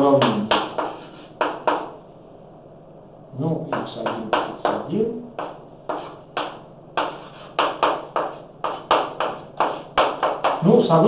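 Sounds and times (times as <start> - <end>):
chalk writing on chalkboard: 0.2 - 2.0, 3.7 - 10.7.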